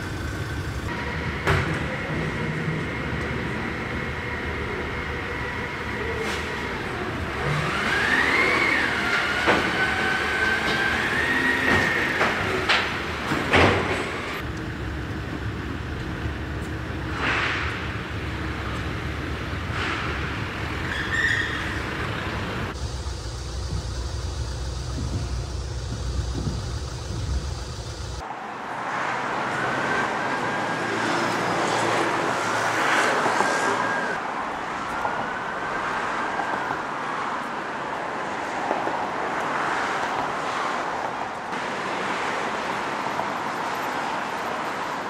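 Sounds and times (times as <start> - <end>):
road traffic passing: 0.0 - 45.0.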